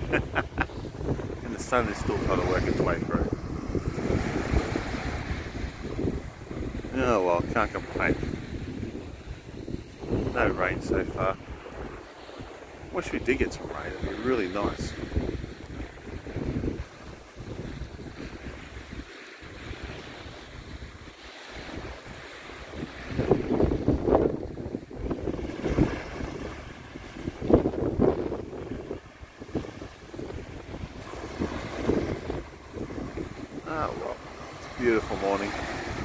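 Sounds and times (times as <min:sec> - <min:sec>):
small waves washing onto sand: 0:00.0 - 0:36.0
wind buffeting microphone: 0:00.0 - 0:36.0.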